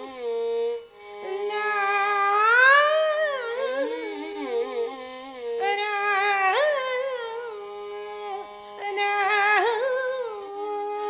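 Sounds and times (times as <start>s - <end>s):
woman singing: 1.2s - 11.0s.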